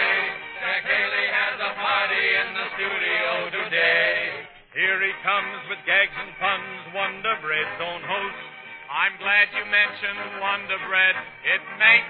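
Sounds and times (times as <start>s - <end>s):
vocal group singing: 0.0s - 6.6s
orchestra playing: 0.0s - 12.0s.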